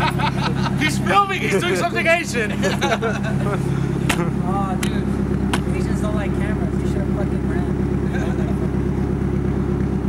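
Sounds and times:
laughter: 0.0 - 3.6
voices: 0.0 - 9.0
car engine idling: 0.0 - 10.0.

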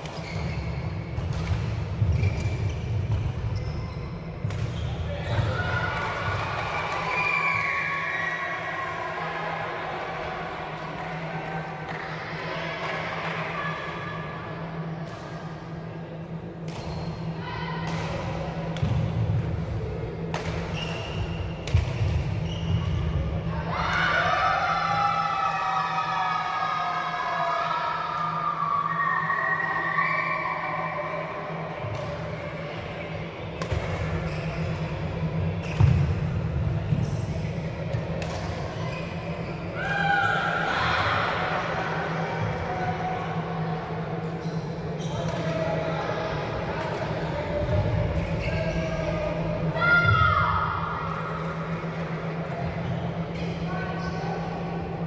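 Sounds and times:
unclear voices in hall: 0.0 - 55.0
steady low hum: 7.8 - 55.0.

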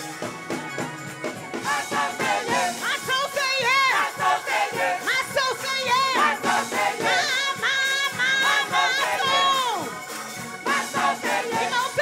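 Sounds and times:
congregation voices: 1.6 - 12.0
woman singing gospel: 1.8 - 10.0, 10.7 - 12.0.

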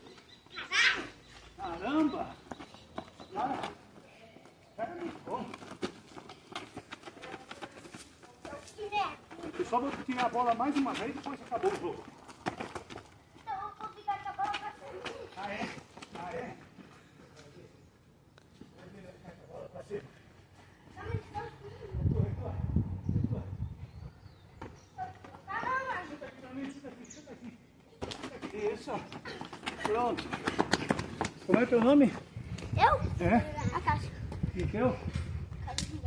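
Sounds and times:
running footsteps on dirt: 0.0 - 17.3, 28.0 - 35.6.

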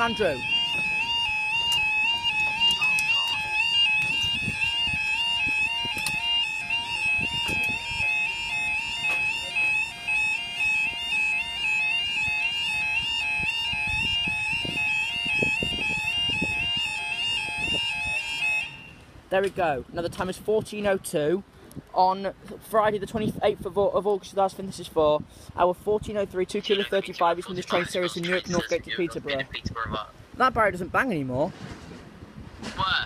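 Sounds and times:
two-tone warbling alarm: 0.0 - 19.0, 26.6 - 28.8.

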